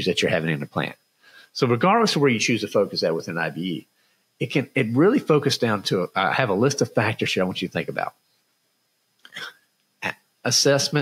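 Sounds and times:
man breathing: 1.2s - 1.6s.

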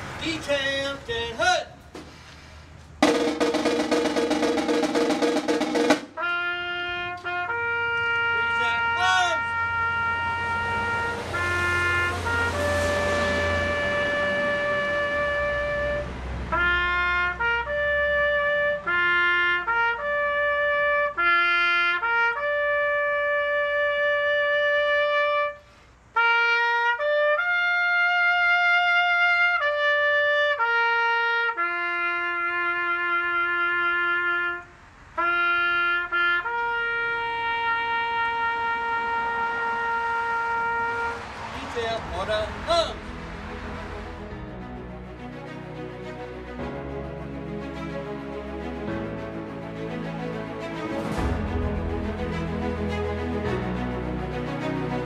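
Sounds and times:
trumpet playing bugle call: 3.1s - 48.9s.

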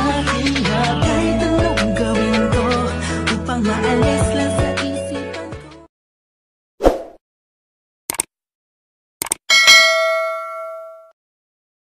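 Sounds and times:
notification bell ding: 9.5s - 11.2s.

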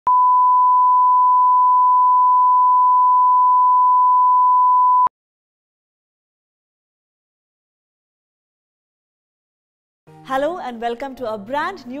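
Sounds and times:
steady sine test tone: 0.1s - 5.1s.

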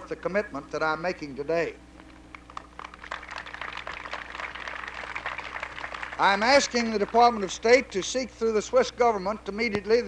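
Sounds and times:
steady low hum: 0.0s - 10.0s
crowd applauding: 2.1s - 8.0s.

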